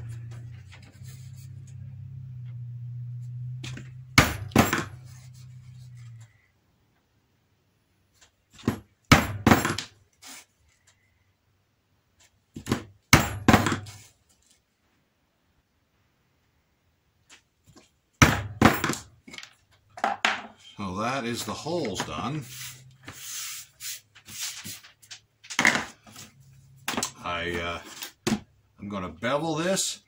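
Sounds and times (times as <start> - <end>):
low hum: 0.0 - 6.6
mallet knocking hole punch: 4.2 - 4.9.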